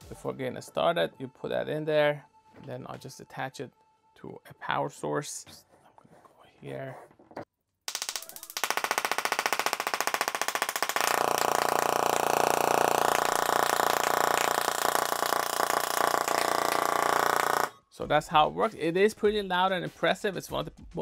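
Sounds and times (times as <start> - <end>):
tesla coil electric buzz: 7.9 - 17.7.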